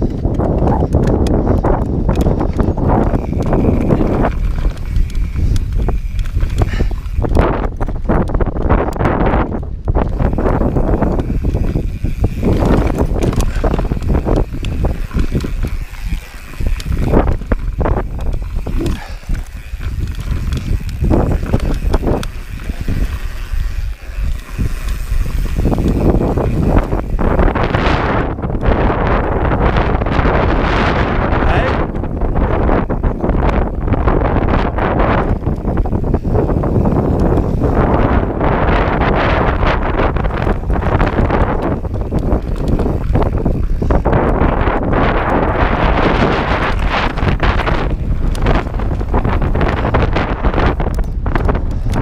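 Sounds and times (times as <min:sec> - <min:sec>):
bike chain and frame rattling: 0:00.0 - 0:52.0
bike tyres rumbling on grass: 0:00.0 - 0:52.0
wind on microphone: 0:00.0 - 0:52.0.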